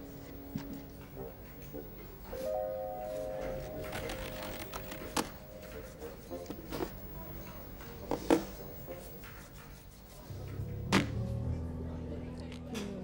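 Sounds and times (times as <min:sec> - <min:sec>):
background music tone: 0:00.0 - 0:12.4.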